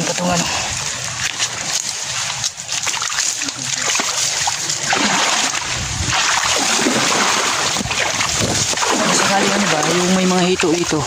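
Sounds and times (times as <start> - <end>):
water splashing while wading: 0.0 - 11.0.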